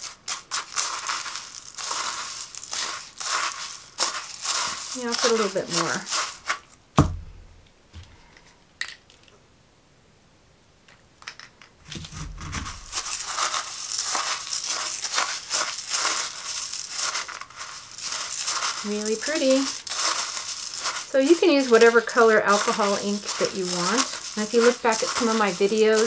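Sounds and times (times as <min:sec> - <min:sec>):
glass grains stirred with stick: 0:00.0 - 0:06.7, 0:12.6 - 0:26.0
loud knock: 0:07.0 - 0:07.6.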